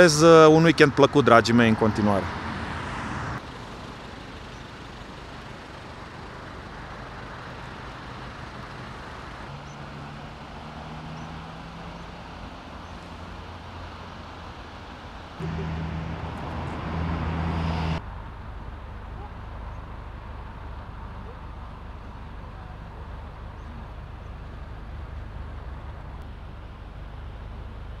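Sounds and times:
vehicle engine humming: 0:00.0 - 0:28.0
constant rushing noise: 0:01.2 - 0:28.0.

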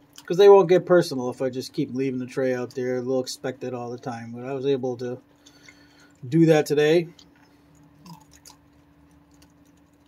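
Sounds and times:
steady low hum: 0:00.0 - 0:10.0
raccoon chewing dry food: 0:07.2 - 0:10.0.

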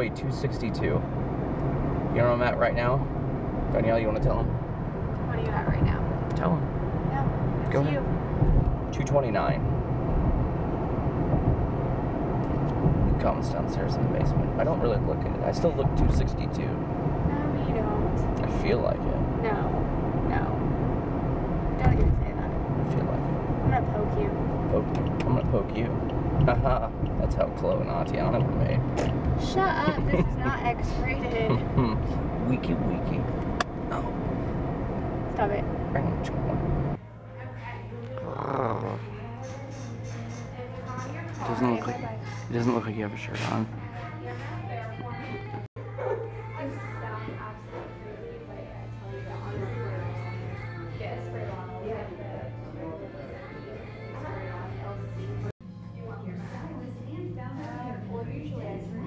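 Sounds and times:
car engine and road rumble: 0:00.0 - 0:59.0
low hum: 0:00.0 - 0:59.0
wordless vocal sound: 0:28.4 - 0:33.2.

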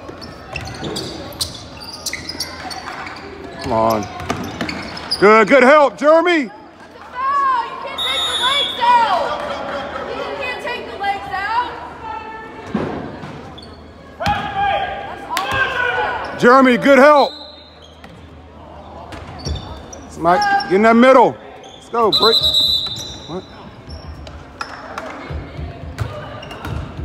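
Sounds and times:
sneaker squeaks: 0:00.0 - 0:05.6, 0:13.2 - 0:14.5, 0:15.5 - 0:25.0, 0:26.0 - 0:27.0.

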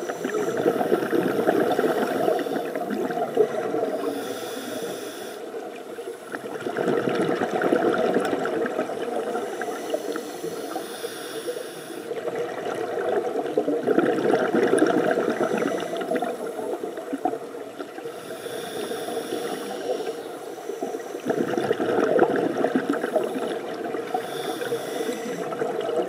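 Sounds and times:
rush of exhaled bubbles: 0:00.0 - 0:04.1, 0:05.6 - 0:10.6, 0:12.1 - 0:20.2, 0:20.9 - 0:26.0
regulator inhale hiss: 0:00.0 - 0:05.8, 0:09.4 - 0:12.2, 0:15.4 - 0:16.7, 0:18.0 - 0:21.3, 0:23.1 - 0:25.7.

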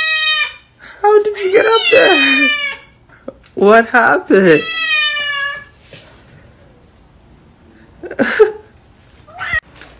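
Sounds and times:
cat meowing: 0:00.0 - 0:00.7, 0:01.5 - 0:02.9, 0:04.6 - 0:05.7, 0:09.3 - 0:09.7.

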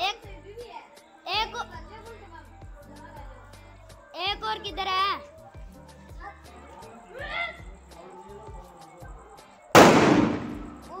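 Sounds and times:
firecracker bang and crackle: 0:09.8 - 0:11.0.

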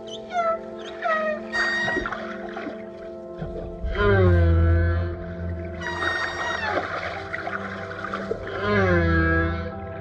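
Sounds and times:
whale moaning calls: 0:00.0 - 0:02.8, 0:03.7 - 0:10.0.

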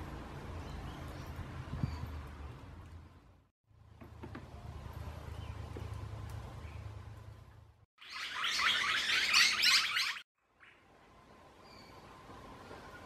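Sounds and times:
birds chirping and chattering: 0:08.1 - 0:10.2.

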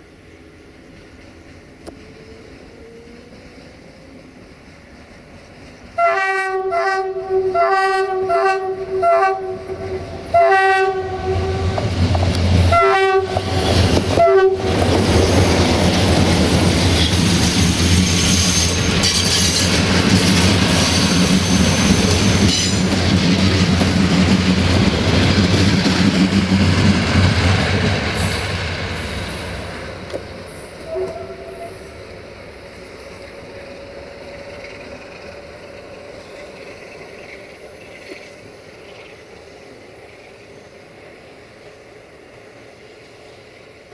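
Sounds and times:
train wheel noise: 0:00.0 - 0:43.9
train horn blasts: 0:06.0 - 0:12.0, 0:12.6 - 0:14.9, 0:30.8 - 0:31.9
locomotive engine drone: 0:07.1 - 0:43.9.

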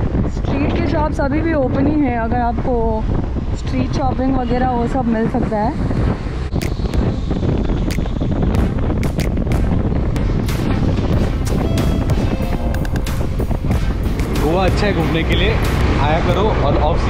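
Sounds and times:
road and engine noise: 0:00.0 - 0:17.0
wind buffeting microphone: 0:00.0 - 0:17.0
music: 0:06.6 - 0:17.0.

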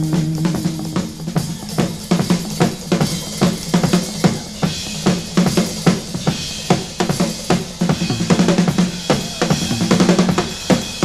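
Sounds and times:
held low note: 0:00.0 - 0:01.8
bass drum and snare strokes: 0:00.0 - 0:11.0
cymbals washing: 0:00.0 - 0:11.0
rock drum kit played hard: 0:00.0 - 0:11.0.

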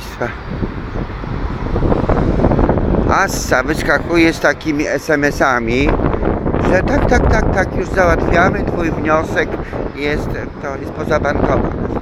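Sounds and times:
city street traffic: 0:00.0 - 0:12.0
wind buffeting microphone: 0:00.0 - 0:12.0.

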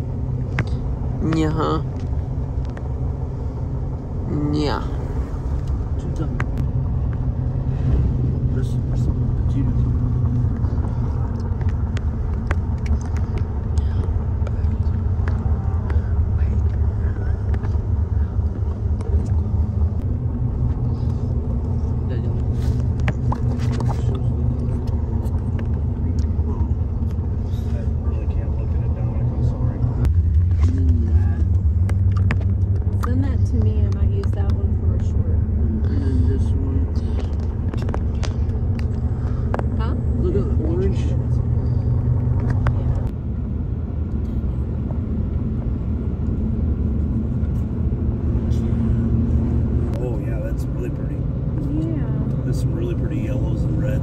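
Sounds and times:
road and engine noise in cabin: 0:00.0 - 0:54.0.

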